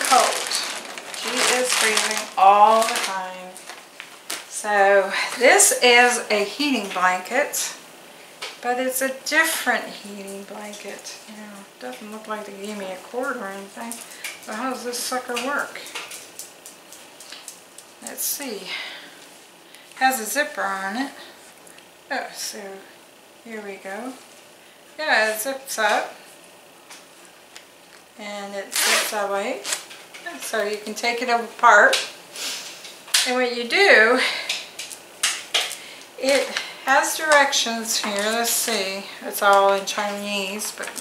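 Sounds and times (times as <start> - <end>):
fabric blanket rustling: 0.0 - 4.2.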